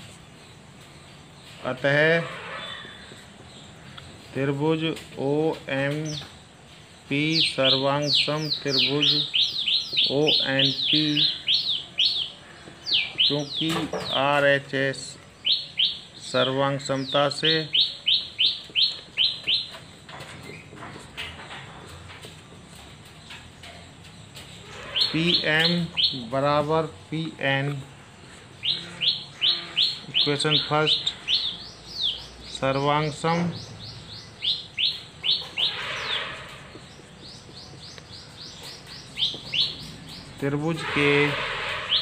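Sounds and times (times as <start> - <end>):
bird chirping: 0.0 - 42.0.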